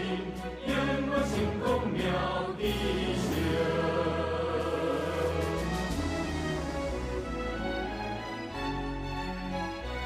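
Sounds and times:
choir singing sustained notes: 0.0s - 8.5s
background music: 0.0s - 10.0s.

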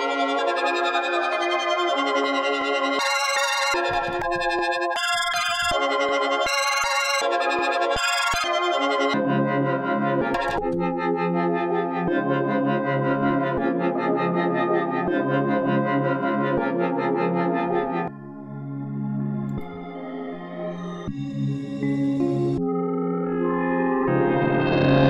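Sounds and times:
synthesizer melody loop: 0.0s - 9.2s, 10.2s - 10.8s.

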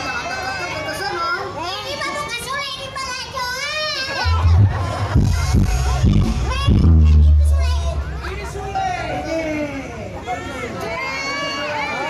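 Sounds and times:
voices talking over one another: 0.0s - 10.9s.

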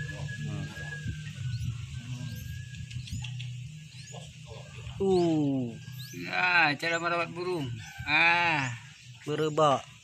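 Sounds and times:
nestling birds begging chirps: 0.0s - 10.0s
steady low hum: 0.0s - 10.0s.

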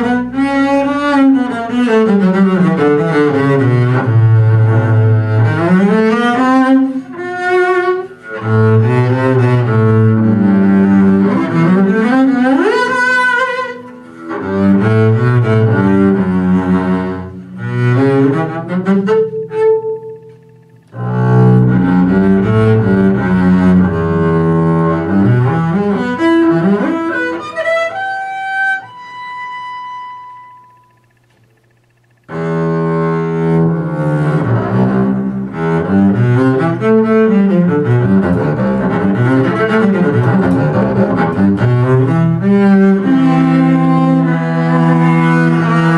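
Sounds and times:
bowed double bass: 0.0s - 31.1s, 32.2s - 45.9s.

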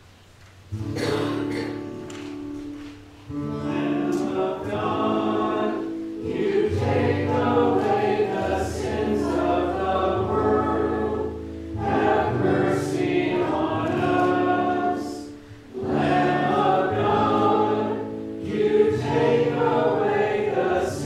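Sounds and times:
group singing church music: 0.8s - 21.0s
low sustained accompaniment chords: 3.4s - 21.0s.

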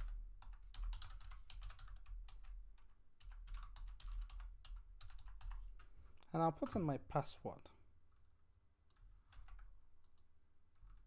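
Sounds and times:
typing on computer keyboard: 0.0s - 5.9s, 8.9s - 11.0s.

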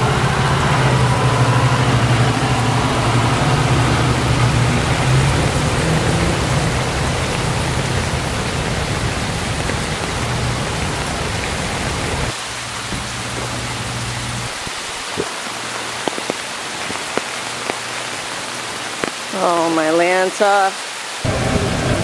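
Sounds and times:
bus engine pulling away: 0.0s - 12.3s, 21.2s - 22.0s
rain on wet street: 0.0s - 22.0s.

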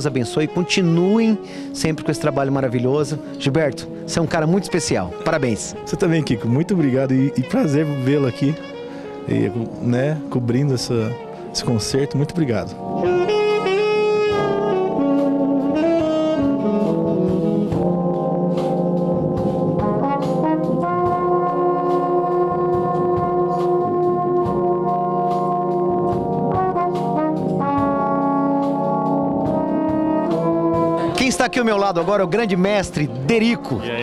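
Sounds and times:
brass band playing slow chords: 0.0s - 34.0s
saxophone solo: 0.0s - 34.0s.

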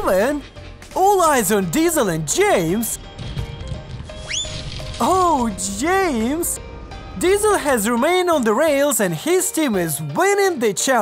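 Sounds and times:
low rumble: 2.0s - 8.8s
rising squeak: 4.0s - 7.2s.

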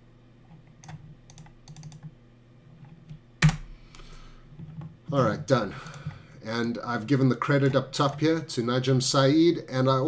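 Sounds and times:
keyboard and mouse clicks: 0.8s - 2.1s.

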